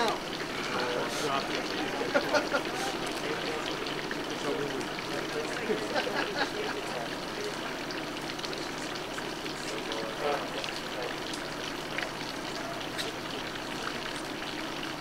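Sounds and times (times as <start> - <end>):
murmurs of people: 0.0 - 11.3
outdoor background hiss: 0.0 - 15.0.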